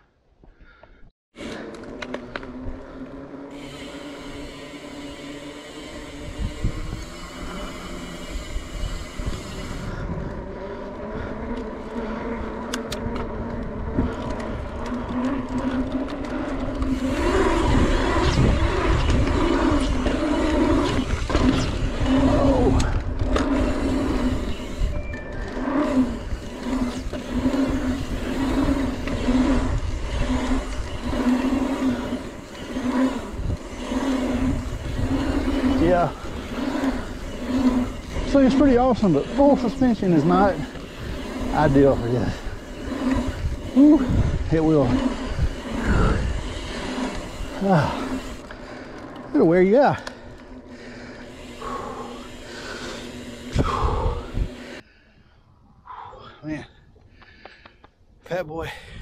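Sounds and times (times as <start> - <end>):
bike tyres rolling on asphalt: 0.4 - 59.0
wind on microphone: 6.0 - 7.6, 16.7 - 48.4, 53.4 - 56.0.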